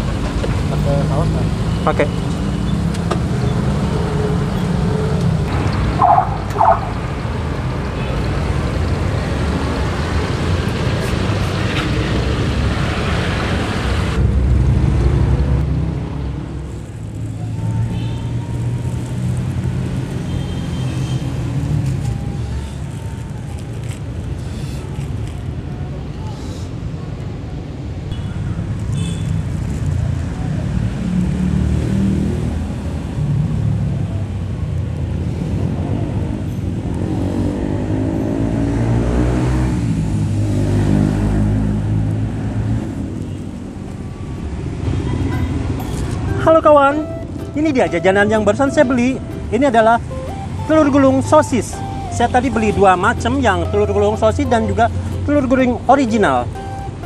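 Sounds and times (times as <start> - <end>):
road traffic rumble: 0.0 - 57.0.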